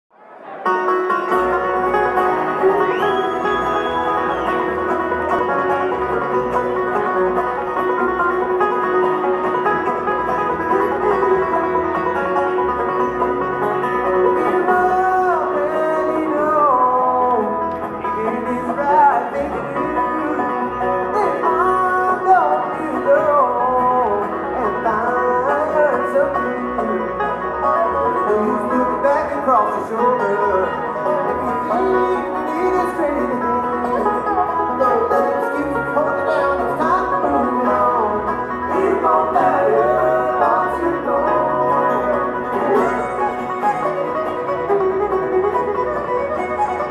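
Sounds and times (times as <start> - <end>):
bluegrass band playing: 0.2 - 46.9.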